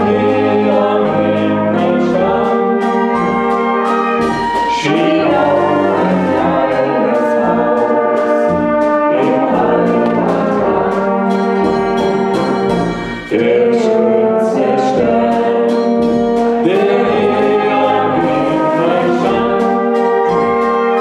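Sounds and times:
man and woman singing duet: 0.0s - 3.3s, 4.7s - 11.5s, 13.2s - 20.4s
brass band playing: 0.0s - 21.0s.

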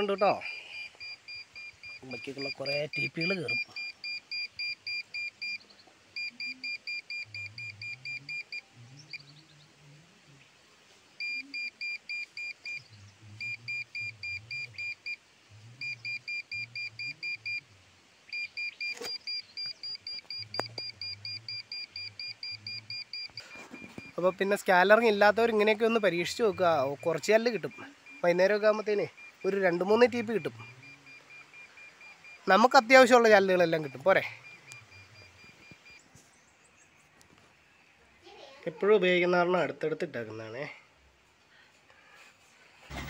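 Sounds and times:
satellite finder meter beeping: 0.0s - 9.3s, 11.2s - 36.2s.

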